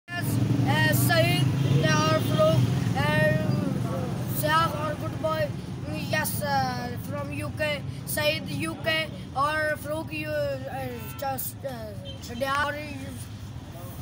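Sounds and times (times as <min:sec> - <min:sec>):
boy's voice: 0:00.1 - 0:14.0
vehicle engine rumble: 0:00.1 - 0:14.0.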